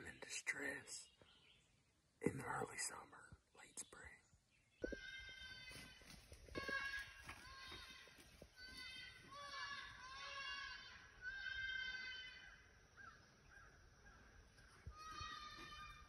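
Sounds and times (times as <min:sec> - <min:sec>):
person whispering: 0:00.0 - 0:01.2, 0:02.2 - 0:04.3
high-pitched fawn bleats: 0:05.0 - 0:12.6, 0:15.0 - 0:16.0.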